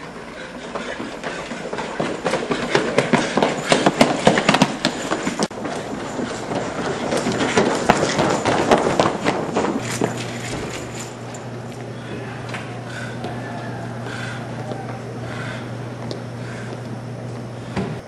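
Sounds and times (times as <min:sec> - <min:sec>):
footsteps running on hard floor: 0:00.4 - 0:11.1.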